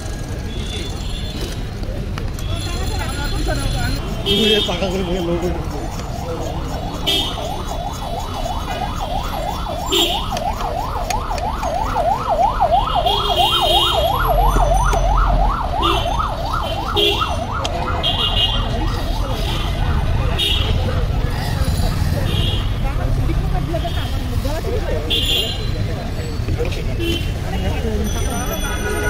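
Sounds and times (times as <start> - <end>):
street traffic rumble: 0.0 - 29.0
emergency siren yelping: 6.0 - 19.4.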